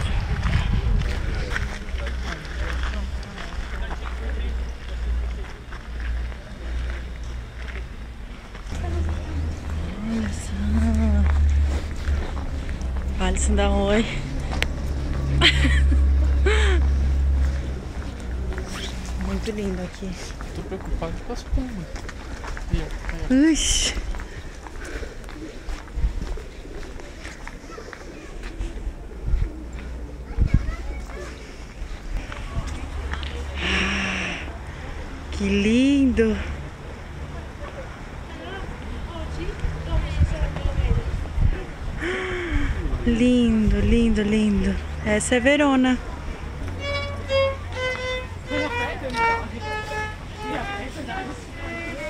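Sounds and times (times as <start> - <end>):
wind buffeting microphone: 0.0 - 2.1, 24.0 - 27.0, 28.5 - 33.1, 39.5 - 44.9
footsteps on stone pavement: 0.0 - 34.0, 43.2 - 52.0
faint voices talking: 0.0 - 52.0.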